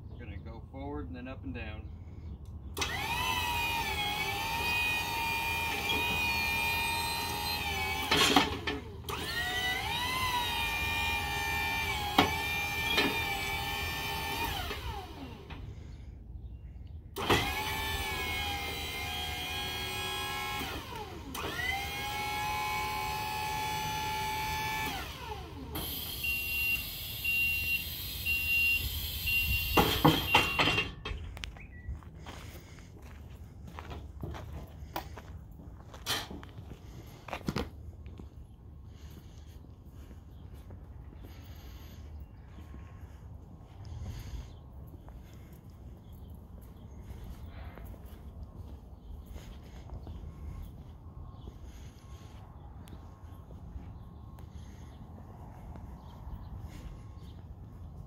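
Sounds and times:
scissor lift motor whining: 2.7 - 16.2, 17.1 - 31.3
hydraulic hiss: 25.7 - 30.8
beeping alarm: 25.8 - 31.0.

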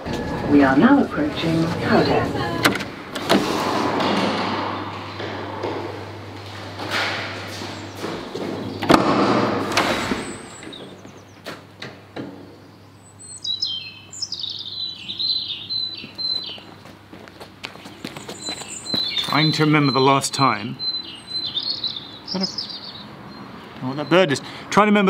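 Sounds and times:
footsteps: 0.0 - 8.8, 16.0 - 19.5
doors knocking and thudding: 0.0 - 11.0
low hum and rushing noise: 0.0 - 13.0
songbird chirping: 12.4 - 16.7, 17.8 - 24.4.

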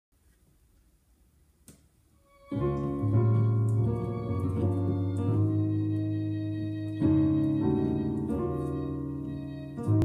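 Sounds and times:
synthesizer piano chords: 2.3 - 10.0.

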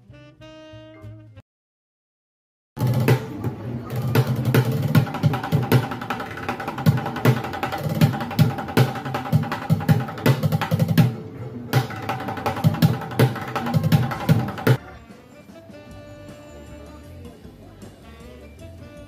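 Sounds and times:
drumsticks beating plastic buckets: 2.8 - 14.8.

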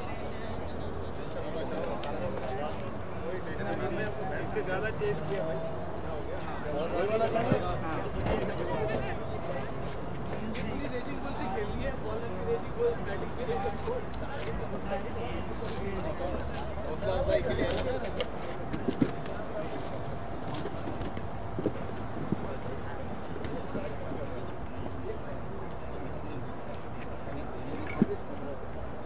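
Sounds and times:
distant voices of players: 0.0 - 29.0.

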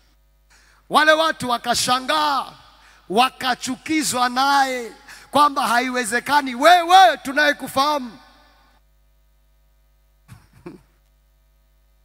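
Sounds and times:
man's throat sounds: 10.3 - 11.0.

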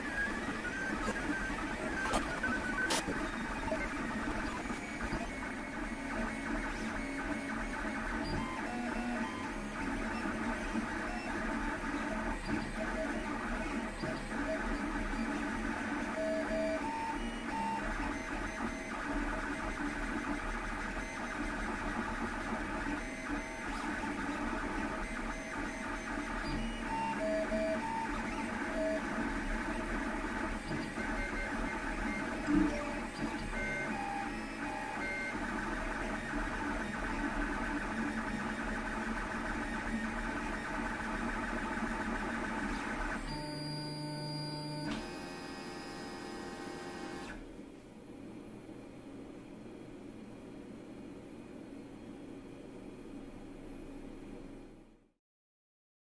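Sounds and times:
printer stepper motors whining: 0.0 - 47.4.

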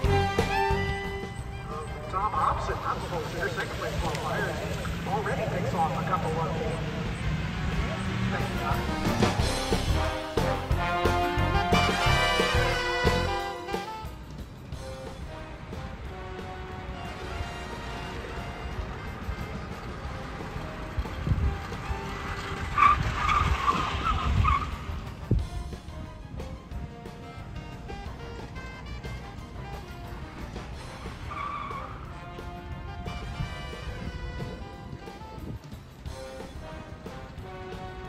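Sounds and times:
tyres squealing: 0.0 - 14.1, 16.5 - 25.1, 27.9 - 35.5
background music: 0.0 - 38.0.

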